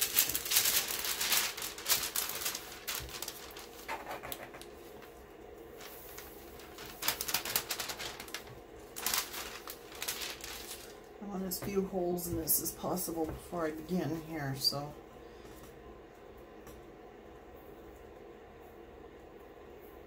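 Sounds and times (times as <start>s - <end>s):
paper rustling and crinkling: 0.0s - 11.9s.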